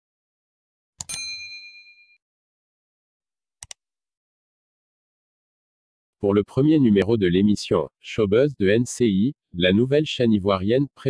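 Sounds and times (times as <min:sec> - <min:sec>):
notification bell ding: 0:01.0 - 0:02.2
mouse click: 0:03.6 - 0:03.8.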